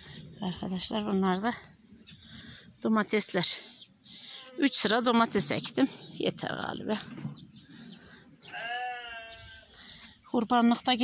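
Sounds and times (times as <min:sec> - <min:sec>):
long wavering animal bleat: 0:08.5 - 0:09.7.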